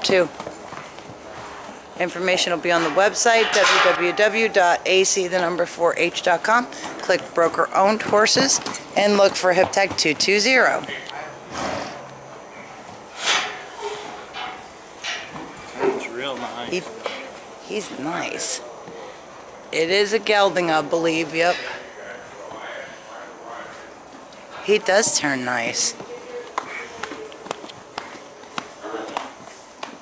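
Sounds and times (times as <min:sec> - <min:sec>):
horse hooves on straw: 0:00.0 - 0:03.4
faint voices: 0:15.5 - 0:29.8.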